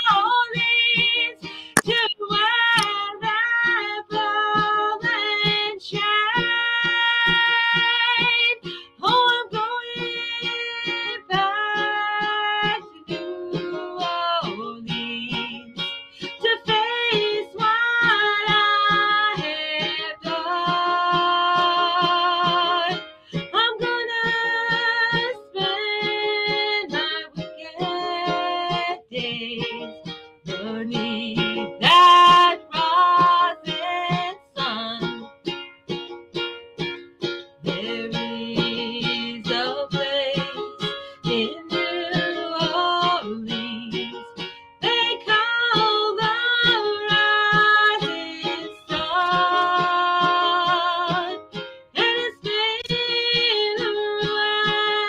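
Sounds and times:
strummed ukulele-like instrument: 0.0s - 55.0s
woman singing folk song: 0.0s - 55.0s.

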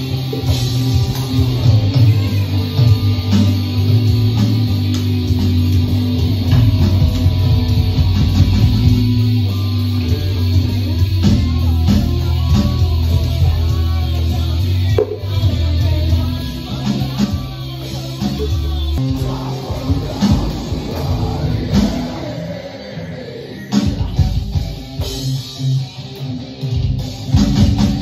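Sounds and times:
heavy electric guitar riff: 0.0s - 28.0s.

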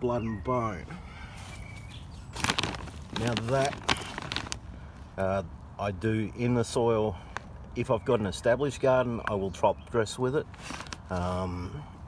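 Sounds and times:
plastic bag rustling and crinkling: 1.7s - 5.0s, 10.4s - 11.4s.

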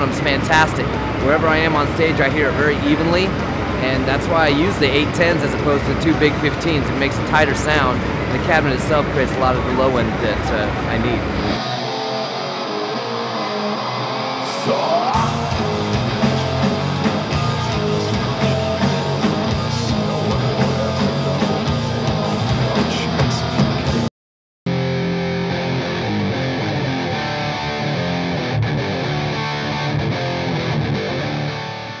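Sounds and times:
heavy metal music: 0.0s - 24.1s, 24.7s - 32.0s
dull rock track: 10.7s - 24.1s, 24.7s - 32.0s.

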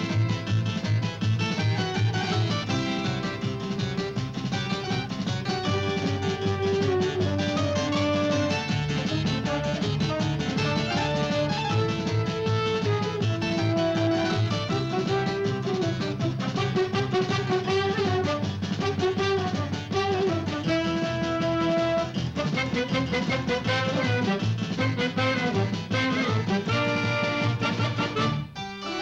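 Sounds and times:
plucked string melody: 0.0s - 29.0s
steady rhythmic beat: 0.0s - 29.0s.

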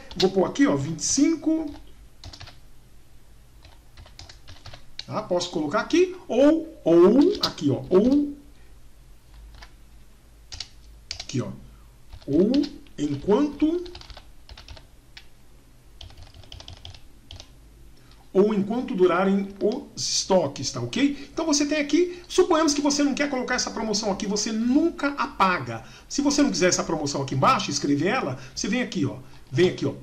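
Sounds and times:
typing on computer keyboard: 0.0s - 0.4s, 1.7s - 2.6s, 3.6s - 5.1s, 9.3s - 9.7s, 10.5s - 11.4s, 12.1s - 15.3s, 16.0s - 17.5s.

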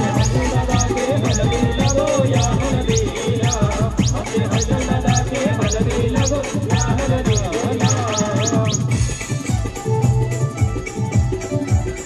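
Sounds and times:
heavy electronic drum beat: 0.0s - 9.6s
wavering keyboard melody: 0.0s - 12.0s.

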